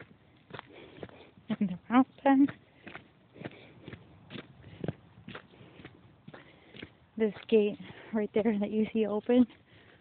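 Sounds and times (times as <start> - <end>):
footsteps on dirt track: 0.0 - 10.0.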